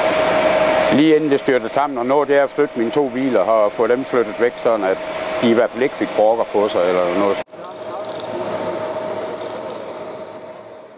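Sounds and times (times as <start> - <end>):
constant mid-pitched hum: 0.0 - 10.9.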